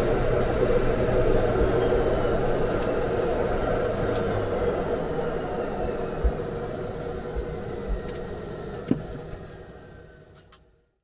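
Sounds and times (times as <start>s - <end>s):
machinery hum: 0.0s - 11.0s.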